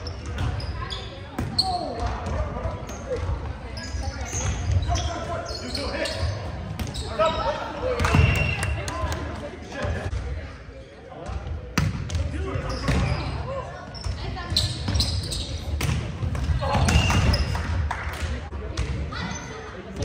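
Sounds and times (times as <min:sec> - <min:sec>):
players' voices and calls: 0:00.0 - 0:20.0.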